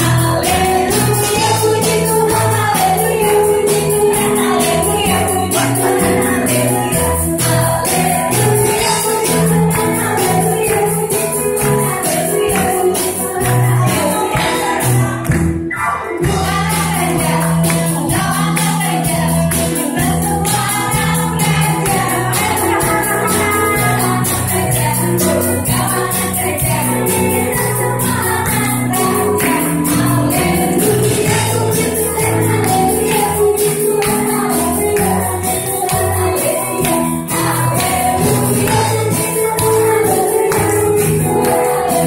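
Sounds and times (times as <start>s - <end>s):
singers on microphones: 0.0s - 15.6s, 16.2s - 42.0s
steady percussion beat: 0.0s - 15.6s, 16.2s - 42.0s
crowd singing along: 0.0s - 42.0s
small band playing: 0.0s - 42.0s.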